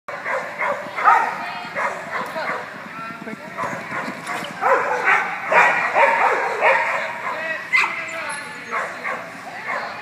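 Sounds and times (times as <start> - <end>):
dog barking: 0.1 - 2.6, 3.6 - 10.0.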